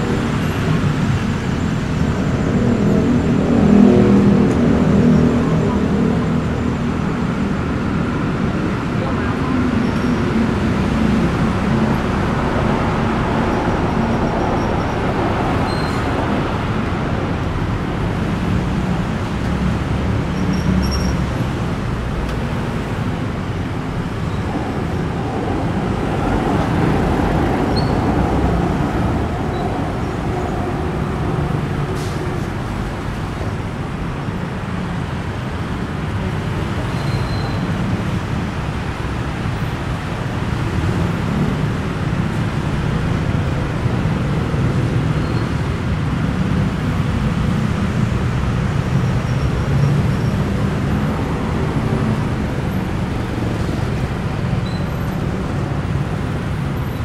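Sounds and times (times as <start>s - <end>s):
busy road traffic rumble: 0.0s - 57.0s.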